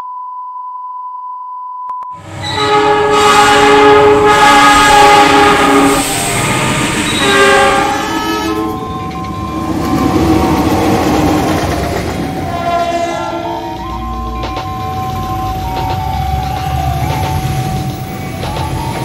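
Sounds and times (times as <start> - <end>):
locomotive air horn blasts: 2.2 - 9.0, 12.3 - 13.8
passing train rumble: 2.2 - 19.0.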